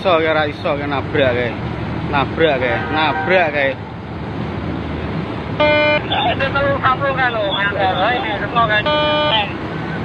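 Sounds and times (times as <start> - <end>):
engine rumble: 0.0 - 10.0
loud horn blast: 5.6 - 6.1, 8.8 - 9.4.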